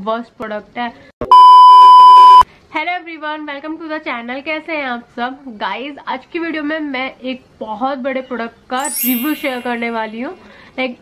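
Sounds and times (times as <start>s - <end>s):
high-pitched electronic beep: 8.8s - 10.1s.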